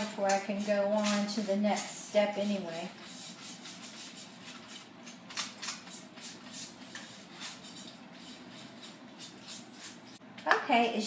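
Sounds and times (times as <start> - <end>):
foam brush strokes on metal pan: 0.0 - 5.0, 5.9 - 10.2.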